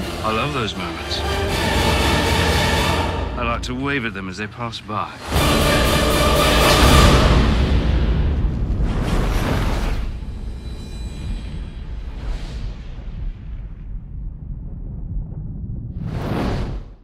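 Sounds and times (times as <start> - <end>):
deep steady rumble: 0.0 - 17.0
whoosh: 5.2 - 17.0
boom: 6.6 - 10.9, 11.7 - 17.0.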